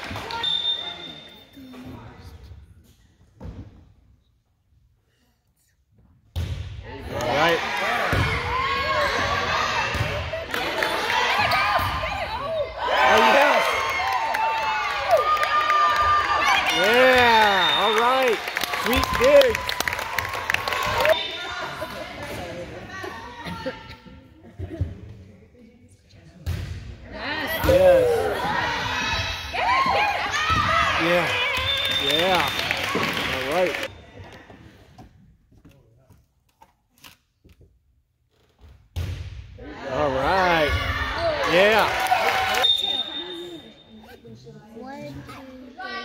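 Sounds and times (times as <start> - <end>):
girls shouting and cheering: 10.8 - 17.2, 27.2 - 31.6.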